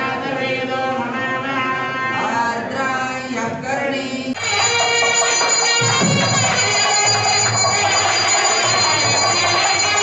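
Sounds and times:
drums: 0:04.4 - 0:10.0
handbell ringing: 0:04.4 - 0:10.0.

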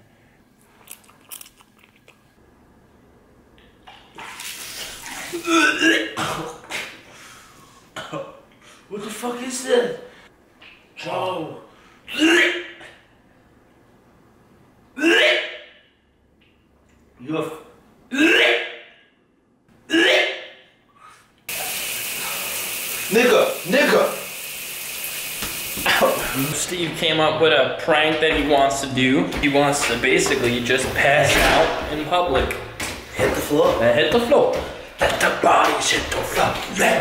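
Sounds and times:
shower running: 0:04.2 - 0:05.5, 0:21.5 - 0:26.7.

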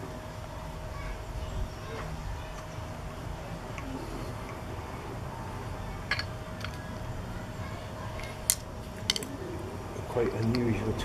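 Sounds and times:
low outdoor background: 0:00.0 - 0:11.0.

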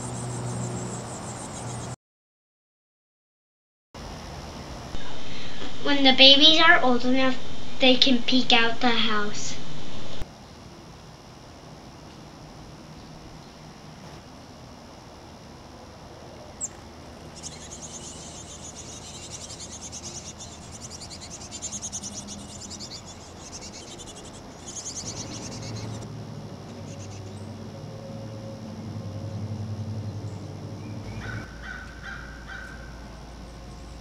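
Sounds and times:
low pulsing buzz: 0:00.0 - 0:02.0, 0:04.0 - 0:34.0
nestlings begging chatter: 0:00.0 - 0:02.0, 0:16.6 - 0:26.1, 0:26.7 - 0:27.6, 0:30.2 - 0:34.0.

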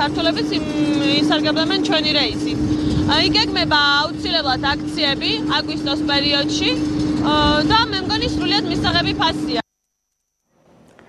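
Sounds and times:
woman talking: 0:00.0 - 0:09.6
steady machine hum: 0:00.0 - 0:11.0.

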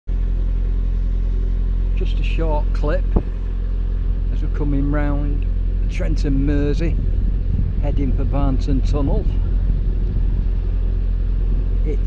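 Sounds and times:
diesel boat engine running: 0:00.1 - 0:12.0.

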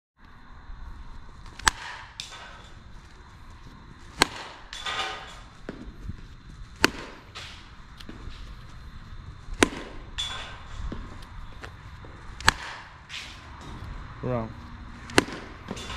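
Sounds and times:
bat hitting ball: 0:01.4 - 0:03.0, 0:04.0 - 0:06.0, 0:06.8 - 0:08.6, 0:09.5 - 0:13.9, 0:14.8 - 0:15.9.

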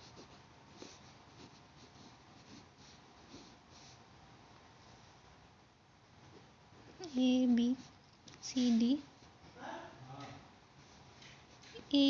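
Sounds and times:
pen scratching on paper: 0:00.0 - 0:04.0.

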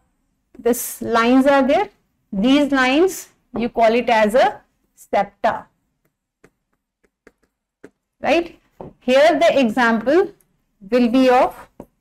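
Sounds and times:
stylus tapping on screen: 0:05.9 - 0:08.2.

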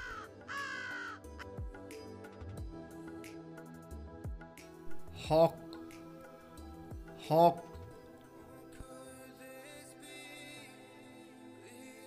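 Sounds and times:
crow cawing: 0:00.0 - 0:01.6
soft music with low beat: 0:00.0 - 0:10.6.

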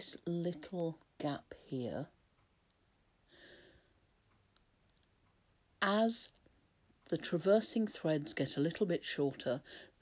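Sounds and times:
woman speaking: 0:00.0 - 0:02.2, 0:05.8 - 0:06.4, 0:07.1 - 0:09.8
faint light clicks: 0:04.2 - 0:05.4.

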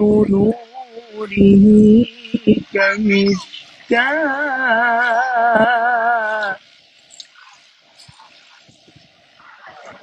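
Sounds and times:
man chanting recitation: 0:00.0 - 0:06.7.

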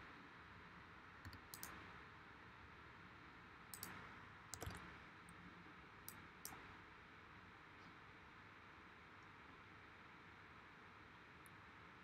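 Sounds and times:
mouse and keyboard clicks: 0:01.2 - 0:01.8, 0:03.7 - 0:04.9.

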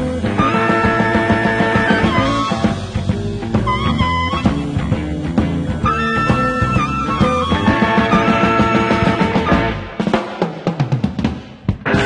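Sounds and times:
blues-soul band playing: 0:00.0 - 0:12.0
snare and bass drum hits: 0:06.4 - 0:12.0.

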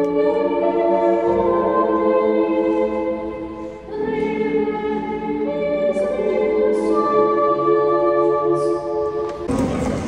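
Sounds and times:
choir singing in a church: 0:00.0 - 0:10.0.

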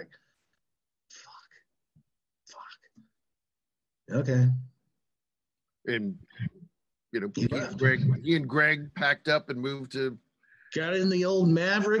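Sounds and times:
person whispering: 0:01.1 - 0:01.7, 0:02.4 - 0:03.0.

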